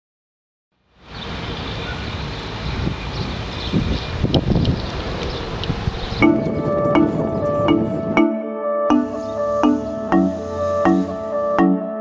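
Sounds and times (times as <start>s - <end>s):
faint traffic rumble: 1.0s - 8.0s
wind-like rush: 1.1s - 8.2s
background music with pitched notes: 6.2s - 12.0s.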